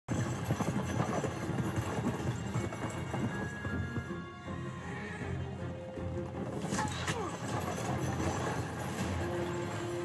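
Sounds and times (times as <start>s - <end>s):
horse hooves clip-clopping: 0.1s - 10.0s
faint music score: 2.3s - 10.0s
carriage rolling: 6.2s - 10.0s.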